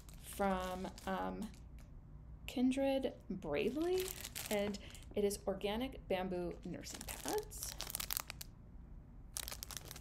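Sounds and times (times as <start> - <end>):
plastic packaging crinkling: 0.0 - 1.9, 3.6 - 5.1, 6.8 - 8.5, 9.3 - 10.0.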